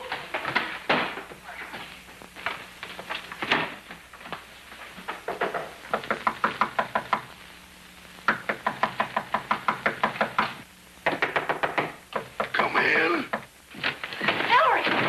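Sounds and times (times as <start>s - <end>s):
rapid knocking: 8.3s - 12.7s.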